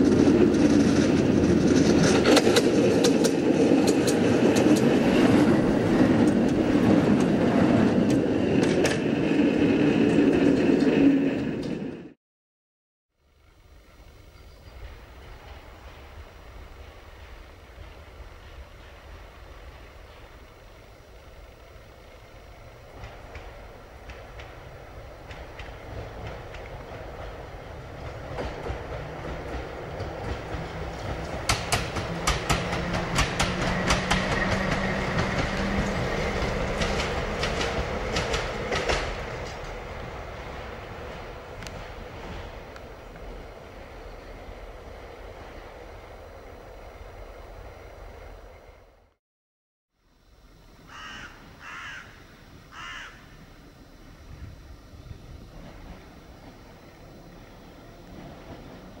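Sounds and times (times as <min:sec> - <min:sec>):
tram wheels clicking: 0:00.0 - 0:12.1, 0:13.4 - 0:49.1, 0:53.5 - 0:59.0
tram rumble and hum: 0:00.0 - 0:12.2, 0:13.2 - 0:49.2, 0:50.1 - 0:59.0.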